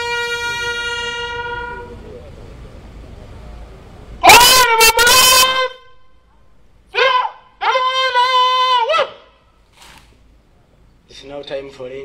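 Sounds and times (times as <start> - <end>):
bugle notes: 0.0 - 2.2, 4.2 - 6.3.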